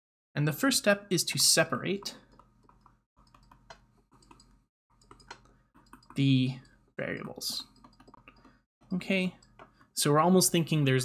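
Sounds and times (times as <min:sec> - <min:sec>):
stylus tapping on tablet screen: 0:02.3 - 0:06.2, 0:07.7 - 0:08.6.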